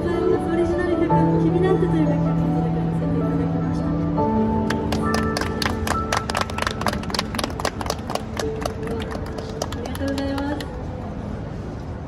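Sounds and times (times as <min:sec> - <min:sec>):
audience hand claps: 0:04.6 - 0:10.7.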